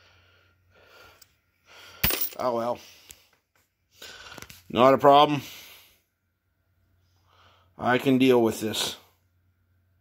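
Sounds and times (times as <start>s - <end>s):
faint breathing: 0.0s - 4.6s, 5.4s - 6.2s, 7.0s - 7.8s
low electrical hum: 0.0s - 10.0s.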